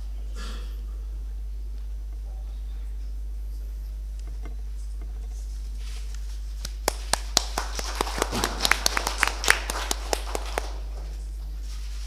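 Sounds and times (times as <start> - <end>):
low electrical hum: 0.0 - 12.0
small audience applauding: 6.6 - 11.2.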